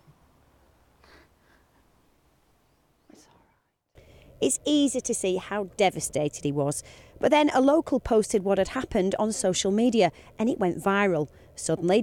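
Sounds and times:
faint breathy sniff: 0:01.0 - 0:01.9.

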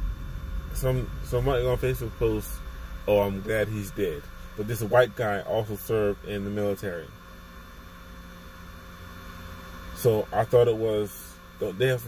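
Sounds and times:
car cabin hum and hiss: 0:00.0 - 0:12.0.

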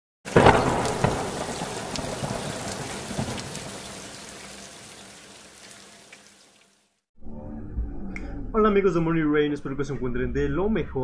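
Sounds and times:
loud thunderclap: 0:00.3 - 0:04.1
thunder rumbling: 0:00.3 - 0:05.0
rain: 0:00.3 - 0:07.0.

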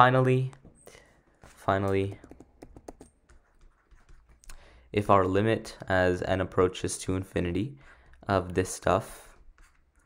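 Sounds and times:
stylus tapping on tablet screen: 0:01.9 - 0:04.6.

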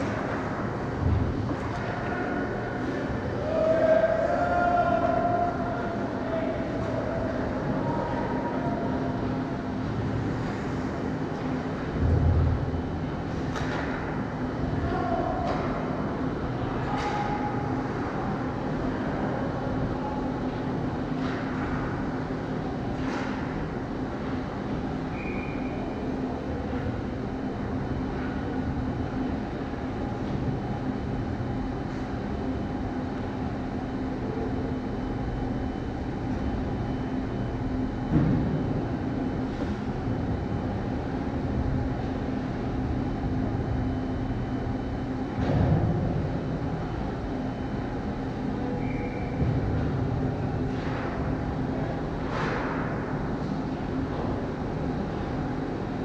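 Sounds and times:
low machinery hum: 0:00.0 - 0:56.0.

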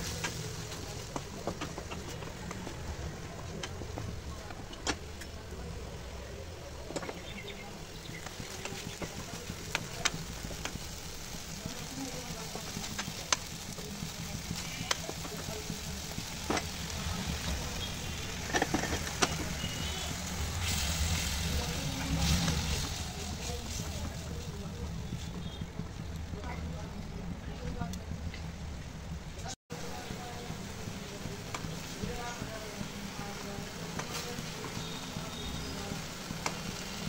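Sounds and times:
food sizzling in a wok: 0:00.0 - 0:03.6, 0:05.1 - 0:27.5, 0:29.7 - 0:37.0
wooden spatula stirring: 0:06.9 - 0:26.1.

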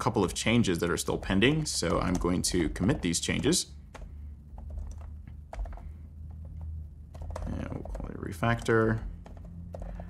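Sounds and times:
low steady hum: 0:00.0 - 0:10.0
keyboard typing: 0:00.8 - 0:10.0.

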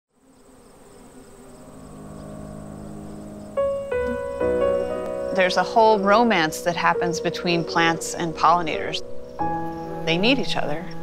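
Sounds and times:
high-pitched insect trill: 0:00.1 - 0:11.0
honey bees buzzing: 0:00.1 - 0:11.0.

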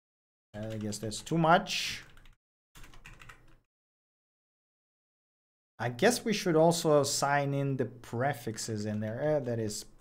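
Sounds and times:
faint typing on a keyboard: 0:00.6 - 0:03.6.

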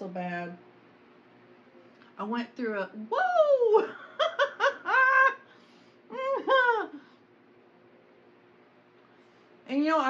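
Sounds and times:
woman laughing: 0:03.4 - 0:07.1.

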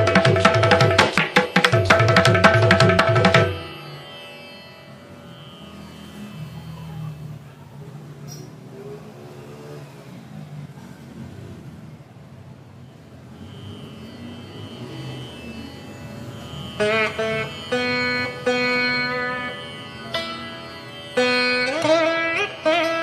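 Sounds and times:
plucked string notes with pitch bends: 0:14.6 - 0:23.0.

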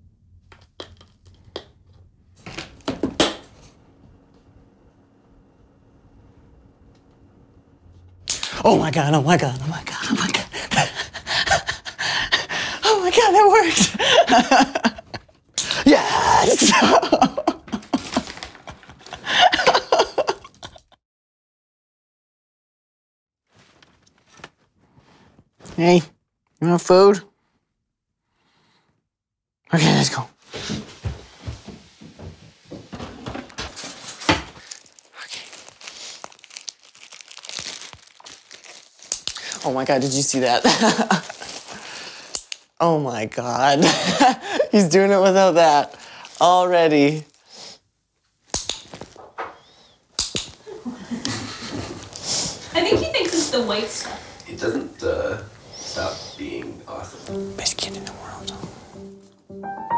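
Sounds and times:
breathy laughter: 0:10.3 - 0:12.8, 0:16.6 - 0:21.0
plastic packet crinkling: 0:17.8 - 0:19.2, 0:33.9 - 0:42.7, 0:45.8 - 0:47.5
soft footfalls: 0:30.4 - 0:34.6.

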